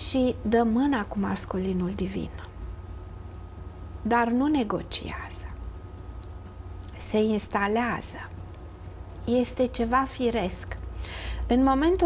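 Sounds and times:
woman speaking softly: 0.0s - 2.6s, 4.0s - 5.6s, 6.9s - 8.4s, 9.2s - 10.8s, 11.5s - 12.0s
steady low hum: 0.0s - 12.0s.

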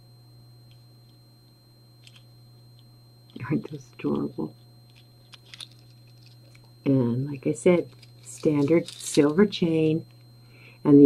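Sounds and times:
electrical hum: 0.0s - 11.0s
faint high whine: 0.0s - 11.0s.

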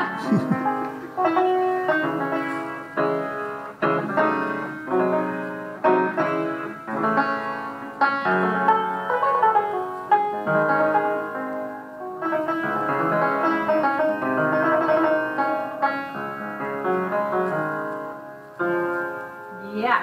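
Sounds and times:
piano playing melody and chords: 0.0s - 19.8s.

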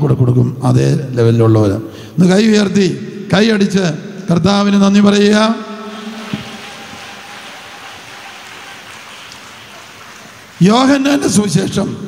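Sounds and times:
background hiss: 5.6s - 12.0s.

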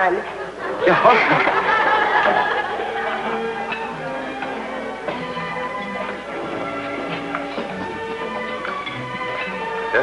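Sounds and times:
audience laughter: 0.4s - 3.7s
music bridge: 1.6s - 10.0s.

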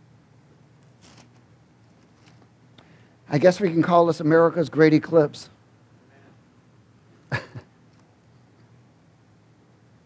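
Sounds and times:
short cough: 7.3s - 7.7s.

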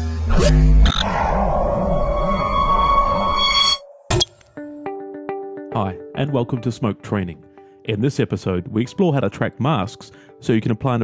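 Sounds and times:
steady electronic tone: 0.5s - 4.1s
glitchy digital blips: 0.8s - 1.1s.

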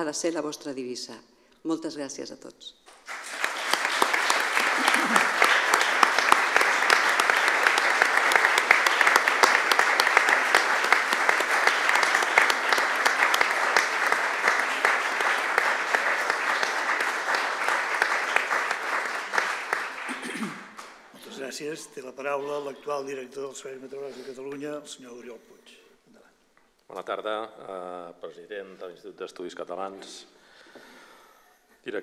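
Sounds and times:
audience applauding: 2.9s - 21.1s.

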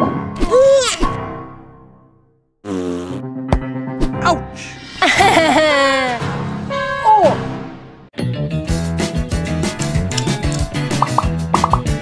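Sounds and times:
upbeat background music: 8.5s - 12.0s.

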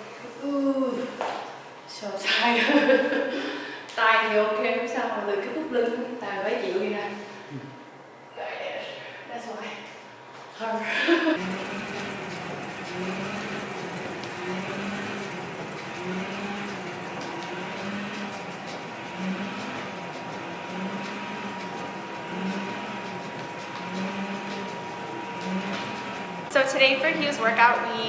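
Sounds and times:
stepmill motor whine: 10.6s - 28.0s
low rhythmic pulse of steps: 10.8s - 28.0s.

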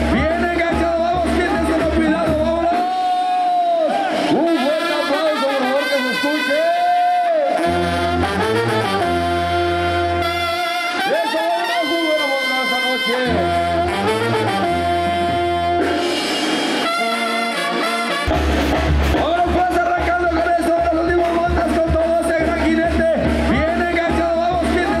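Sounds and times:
brass band playing: 0.0s - 25.0s.

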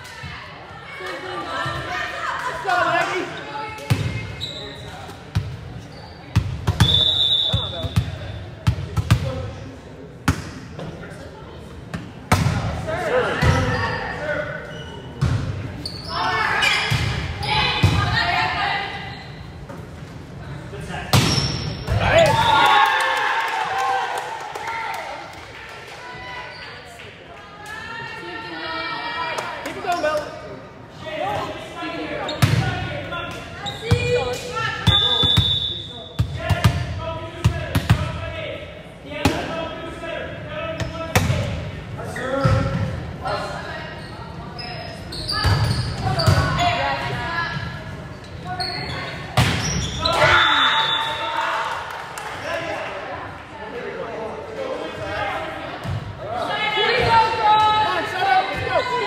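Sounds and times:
shouting and chatter: 43.2s - 59.0s.

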